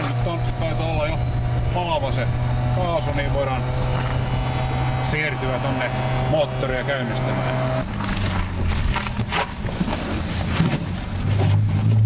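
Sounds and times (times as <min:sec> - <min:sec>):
steady low hum: 0:00.0 - 0:09.2.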